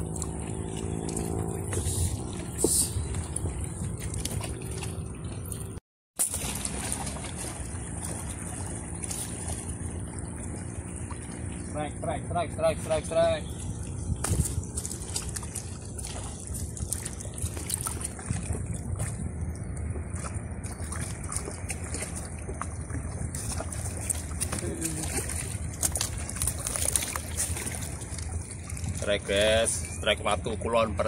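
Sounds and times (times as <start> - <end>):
wind rumble on microphone: 0.0 - 5.8, 6.6 - 31.0
water lapping against rocks: 0.0 - 30.1.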